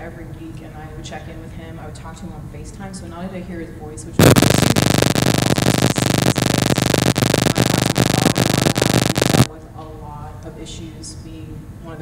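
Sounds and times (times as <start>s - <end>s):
loud electronic buzz with crackling: 4.2s - 9.5s.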